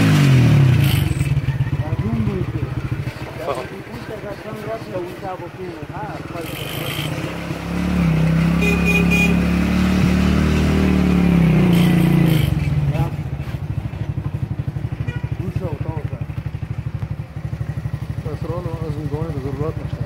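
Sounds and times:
truck engine running: 0.0s - 9.4s, 10.4s - 20.0s.

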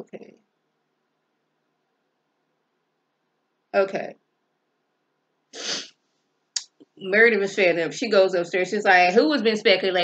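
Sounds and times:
woman sharp nasal inhale: 5.6s - 6.0s.

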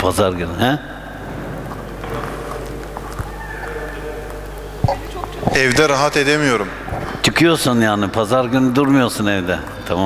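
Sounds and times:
indistinct murmuring: 0.0s - 10.0s
low mains hum: 0.0s - 10.0s.

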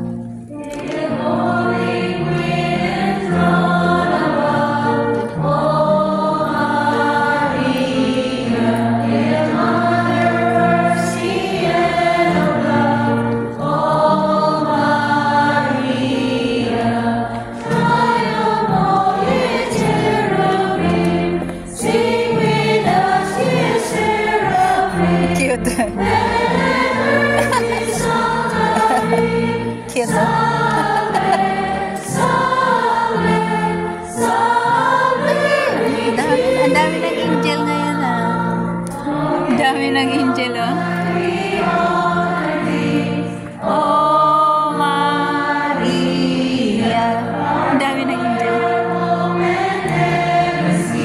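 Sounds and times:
choir singing a hymn: 0.0s - 51.0s
instrumental accompaniment: 0.0s - 51.0s.

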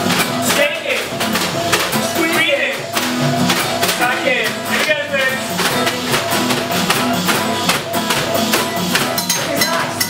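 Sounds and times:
acoustic guitar strumming: 0.0s - 10.0s
shaker and percussion rhythm: 0.0s - 10.0s.

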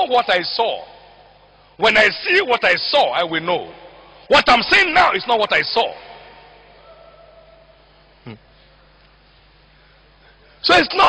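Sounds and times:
amplified speech: 0.0s - 7.7s, 10.4s - 11.0s.

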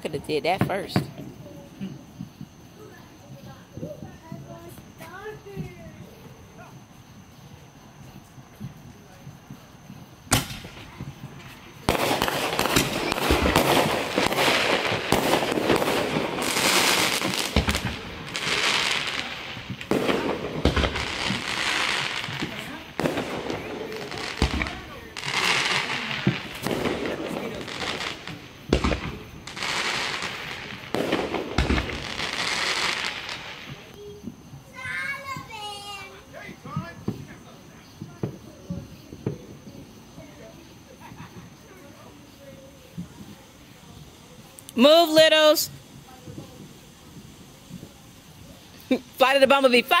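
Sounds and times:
fireworks bangs: 0.0s - 50.0s
fireworks crackling: 0.0s - 50.0s.

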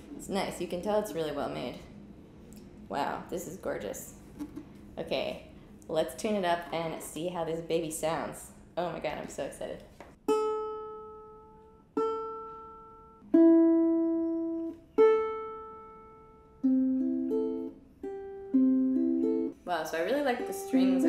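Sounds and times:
ukulele strings plucked: 10.2s - 19.6s.

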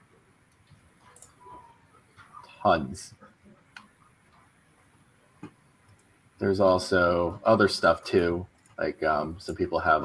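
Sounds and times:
faint clicks: 5.4s - 6.2s.

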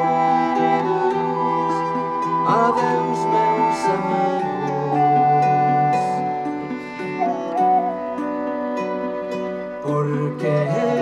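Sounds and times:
acoustic guitar: 0.0s - 11.0s
bowed strings melody: 0.0s - 11.0s.

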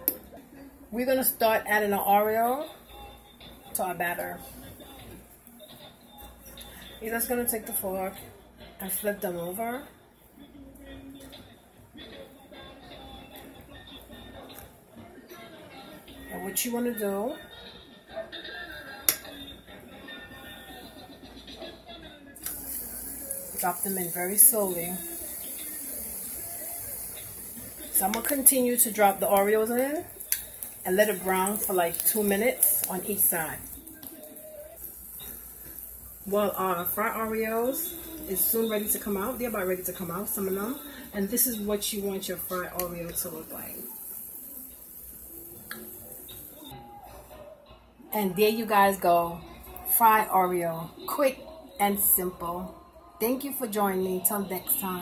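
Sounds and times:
television voices and music: 0.0s - 55.0s
hot oil sizzling: 22.4s - 46.8s.

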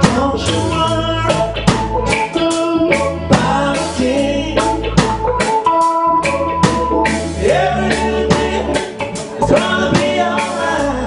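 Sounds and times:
bass: 0.0s - 11.0s
drums: 0.0s - 11.0s.

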